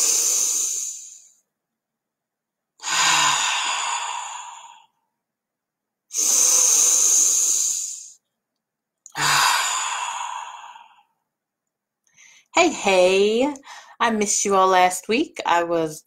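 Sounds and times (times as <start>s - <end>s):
woman breathing deeply: 0.0s - 1.4s, 2.8s - 5.0s, 6.1s - 8.2s, 9.1s - 11.2s, 13.6s - 14.0s
voiced sigh: 9.1s - 11.1s.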